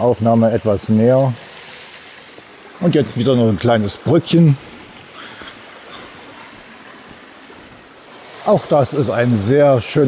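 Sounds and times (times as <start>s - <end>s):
brook water rushing: 0.0s - 10.0s.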